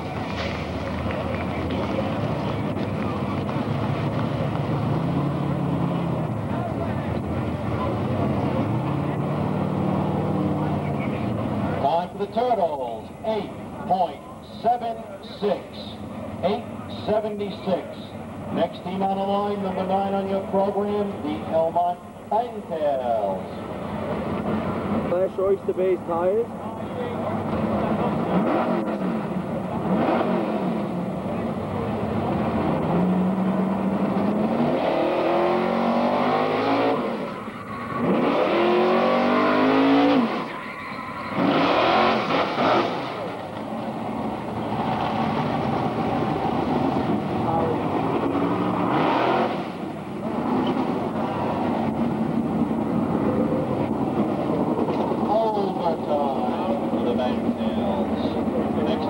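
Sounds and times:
pickup truck engine revving: 0:00.0 - 0:11.8, 0:27.1 - 0:59.0
rushes of noise: 0:27.3 - 0:59.0.

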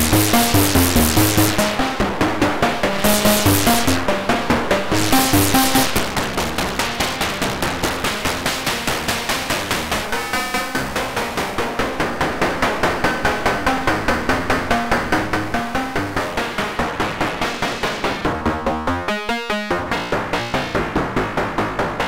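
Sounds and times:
synthesizer pulsed notes: 0:00.0 - 0:21.9.

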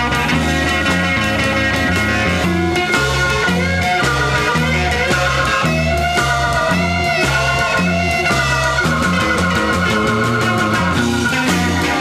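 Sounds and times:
bass line: 0:00.0 - 0:12.0
drums: 0:00.0 - 0:12.0
lead guitar bending notes: 0:00.0 - 0:12.0.

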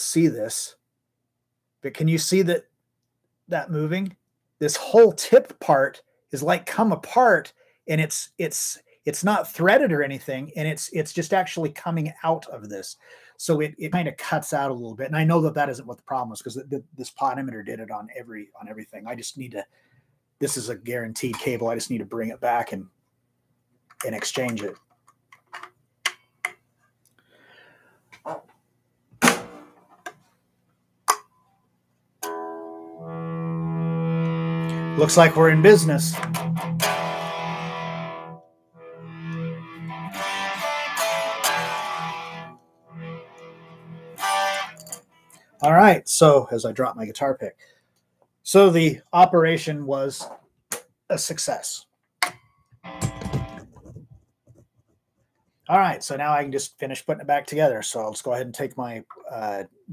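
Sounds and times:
electric guitar strumming: 0:32.2 - 0:45.0, 0:52.8 - 0:53.8.

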